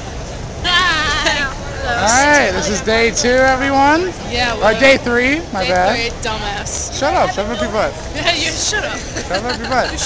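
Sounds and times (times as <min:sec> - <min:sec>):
crowded hall background noise: 0:00.0 - 0:10.0.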